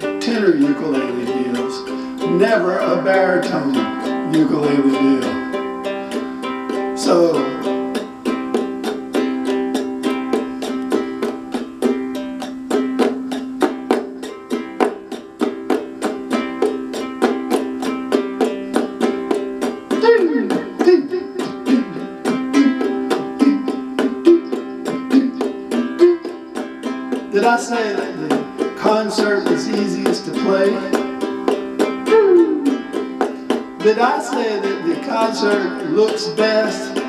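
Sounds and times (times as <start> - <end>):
ukulele strumming chords: 0.0 - 37.0.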